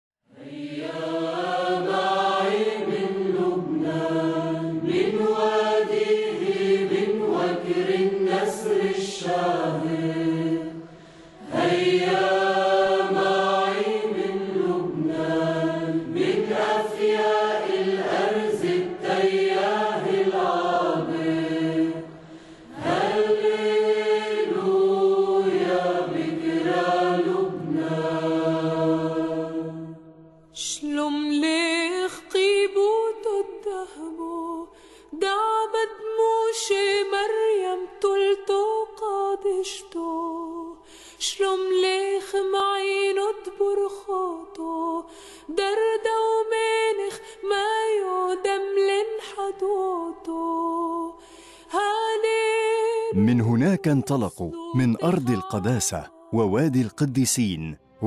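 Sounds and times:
voices chanting long held notes: 0.3s - 30.1s.

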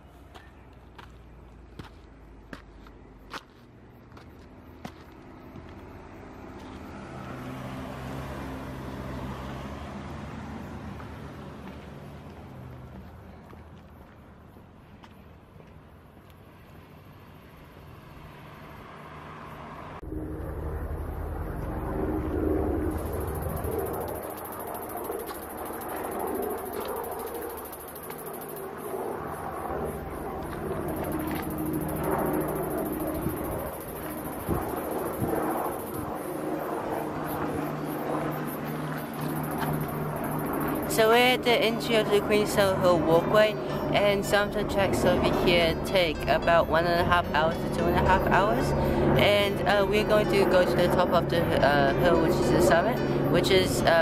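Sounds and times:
rumbling outdoor noise: 0.0s - 54.0s
vehicle engine hum: 0.0s - 54.0s
steady high-pitched buzz: 19.8s - 54.0s.

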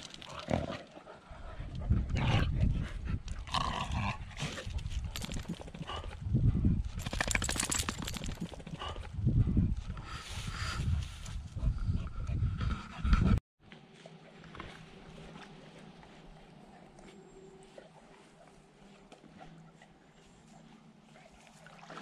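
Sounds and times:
dogs moving about: 6.9s - 8.8s.

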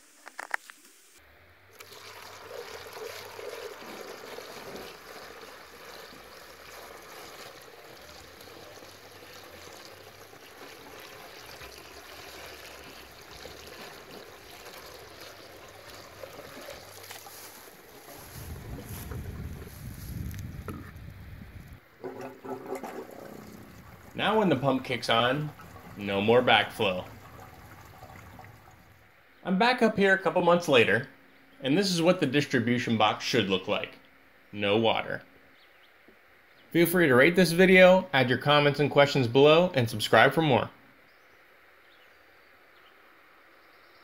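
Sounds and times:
water pouring into a funnel: 1.8s - 20.4s, 22.0s - 29.0s.

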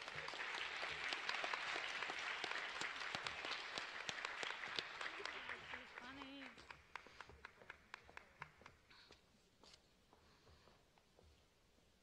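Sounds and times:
audience applauding: 0.0s - 8.9s.

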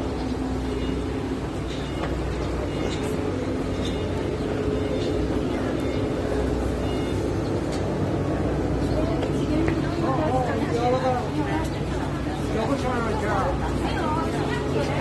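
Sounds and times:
faint voices: 0.0s - 15.0s
low traffic rumble: 0.0s - 15.0s.

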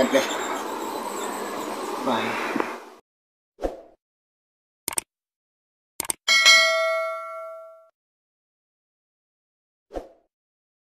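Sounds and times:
notification bell ding: 6.3s - 7.9s.

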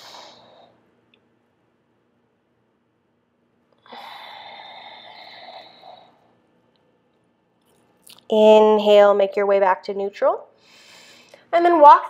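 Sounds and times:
woman exhaling: 3.8s - 6.1s.

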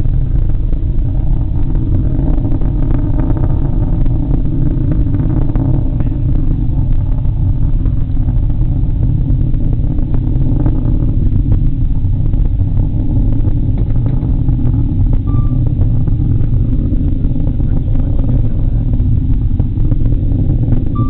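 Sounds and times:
distant rocket rumble: 0.0s - 21.0s.

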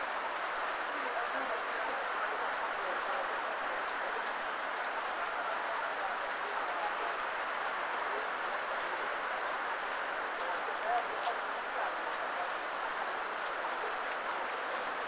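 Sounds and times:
steady rain falling: 0.0s - 15.0s.

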